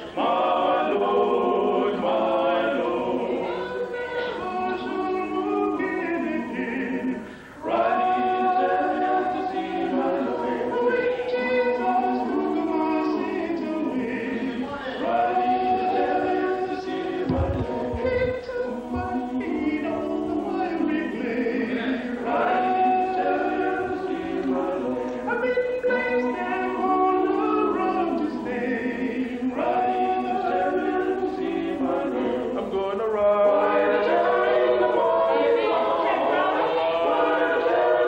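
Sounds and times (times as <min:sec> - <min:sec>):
male vocal quartet singing: 0:00.0 - 0:38.0.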